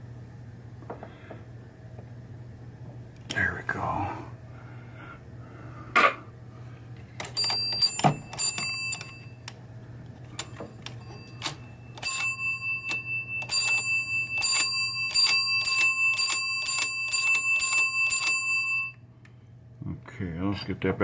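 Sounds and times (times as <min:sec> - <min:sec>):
pinball bell ringing: 0:07.2 - 0:09.5, 0:10.3 - 0:19.0.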